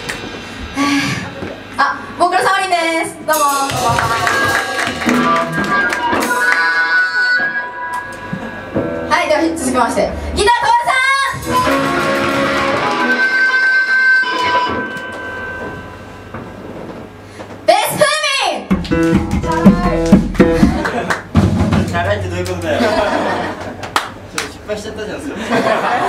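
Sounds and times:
drum hits: 0:03.2 - 0:06.8, 0:10.5 - 0:13.4, 0:18.7 - 0:24.3
electric guitar playing: 0:03.4 - 0:16.7, 0:18.7 - 0:21.1.

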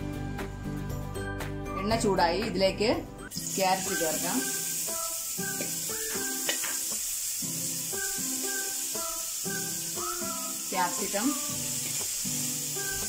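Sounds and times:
background music: 0:00.0 - 0:13.0
carrots sizzling in hot oil: 0:03.3 - 0:13.0.

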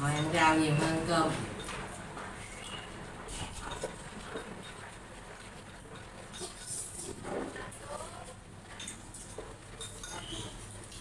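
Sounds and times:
chewing and slurping: 0:01.5 - 0:11.0.

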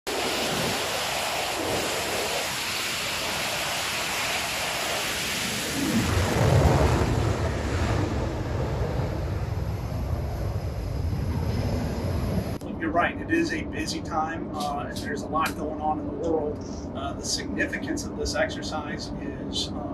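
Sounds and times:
jet engines roaring at full power: 0:00.1 - 0:19.9.

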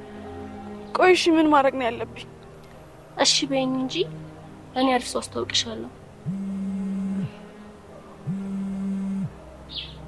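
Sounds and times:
phone vibrating in pocket: 0:06.3 - 0:07.4, 0:08.3 - 0:09.3.

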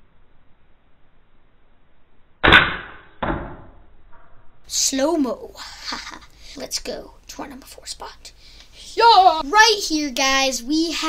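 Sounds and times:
toy dart pistol shot: 0:02.4 - 0:03.7.

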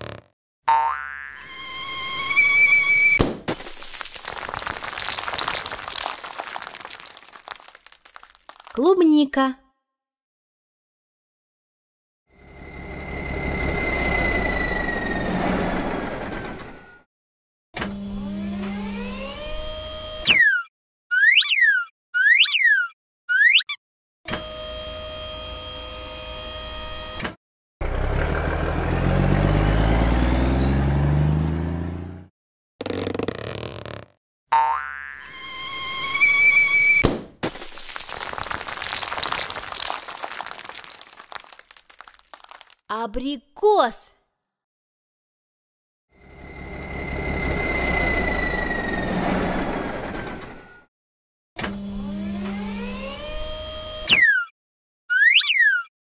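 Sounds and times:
cartoon egg shattering crash: 0:03.2 - 0:08.7, 0:37.0 - 0:42.8
cartoon falling whistle: 0:20.3 - 0:23.8, 0:55.1 - 0:55.9.

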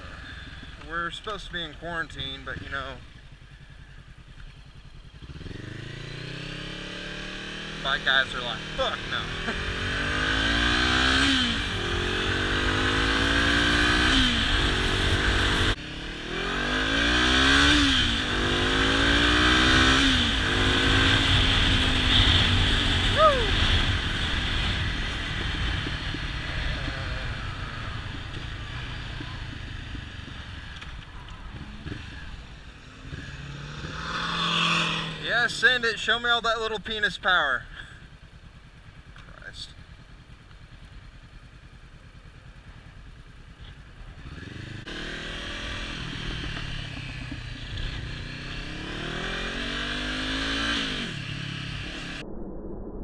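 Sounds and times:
motorcycle engine accelerating: 0:00.0 - 0:53.0
wind rumble: 0:51.0 - 0:53.0.

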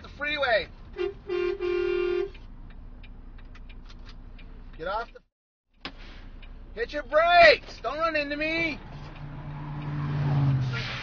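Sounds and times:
truck horn blast: 0:00.9 - 0:02.4.

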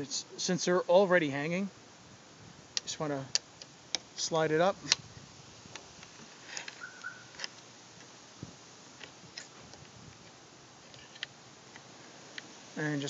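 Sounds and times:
faint chirp-like tone: 0:06.8 - 0:07.4.

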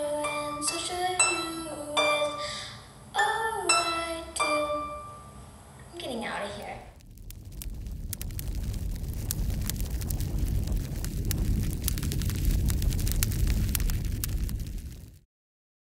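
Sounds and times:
fire crackling and popping: 0:06.6 - 0:15.3
fire roaring: 0:06.8 - 0:15.2.

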